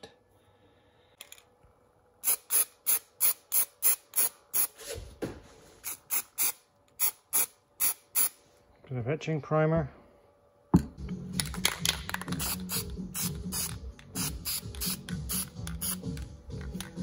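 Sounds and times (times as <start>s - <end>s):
aerosol spray hissing bursts: 12.4s - 16.1s.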